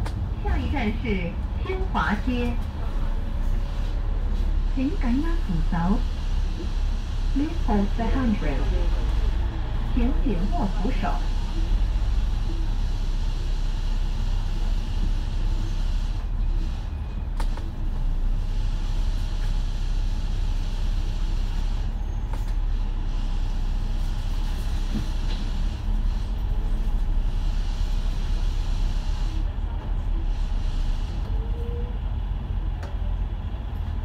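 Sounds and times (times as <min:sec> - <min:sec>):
bus diesel engine rumble: 0:00.0 - 0:34.0.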